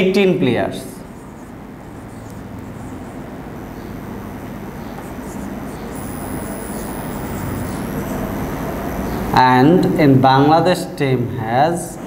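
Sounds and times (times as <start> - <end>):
marker writing on whiteboard: 0.9 - 6.5
high-pitched whine tones: 2.0 - 10.6.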